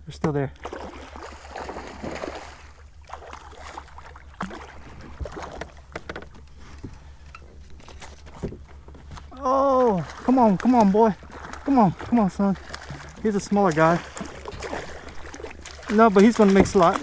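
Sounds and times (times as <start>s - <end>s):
fish splashing at the surface: 0.6s - 5.6s, 9.4s - 17.0s.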